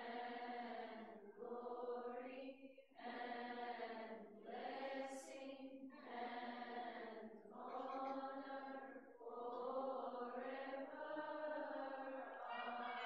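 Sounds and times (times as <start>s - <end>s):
men chanting a hymn: 6.0s - 13.0s.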